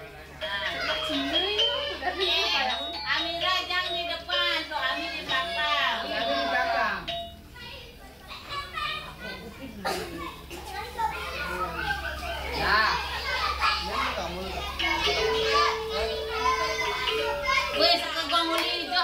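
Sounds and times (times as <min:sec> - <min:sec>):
children chattering and calling out: 0:00.0 - 0:19.0
children laughing: 0:00.4 - 0:02.8, 0:07.9 - 0:19.0.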